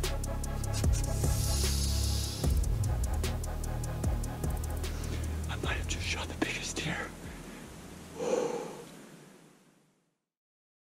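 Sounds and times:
low hum: 0.0s - 8.2s
person whispering: 5.5s - 7.2s.

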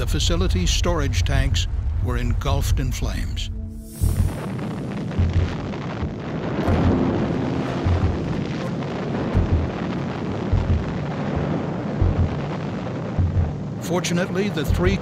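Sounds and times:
large fire burning: 0.0s - 15.0s
explosion: 3.9s - 13.8s
low thuds: 4.0s - 13.8s, 14.6s - 15.0s.

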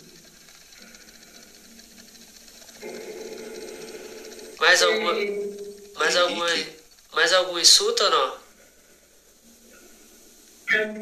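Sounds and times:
spirit box sweeping radio stations: 0.0s - 11.0s.

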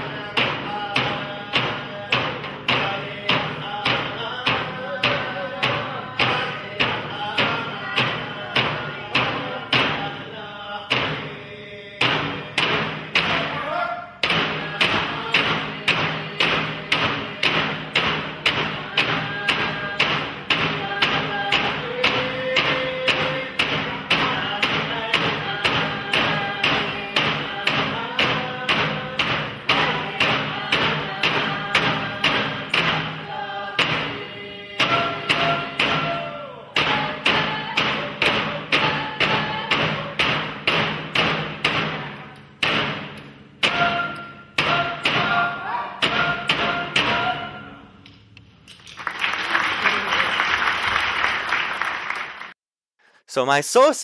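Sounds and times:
group singing: 0.0s - 42.8s, 43.6s - 47.8s
frame drums beating: 0.0s - 47.8s.

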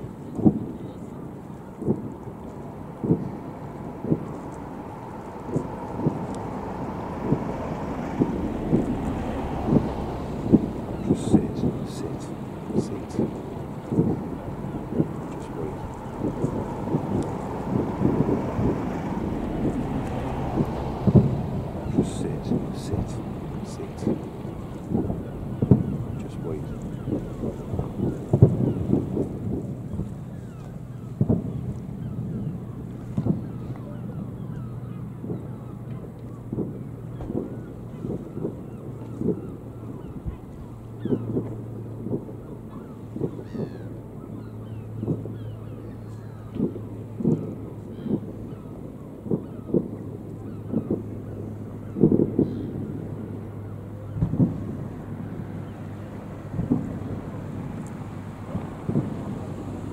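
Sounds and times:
low steady hum: 0.0s - 59.9s
distant fireworks booming: 2.9s - 44.4s, 46.4s - 53.4s, 54.0s - 59.8s.

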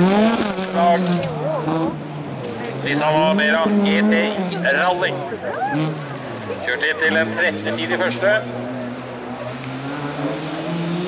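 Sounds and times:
rally car engine passing: 0.0s - 11.0s
announcer speaking: 2.8s - 5.6s, 6.5s - 8.5s.

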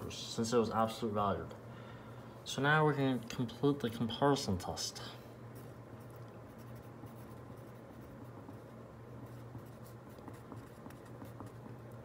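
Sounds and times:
steady low hum: 0.0s - 12.0s
pencil scratching on paper: 5.6s - 12.0s.

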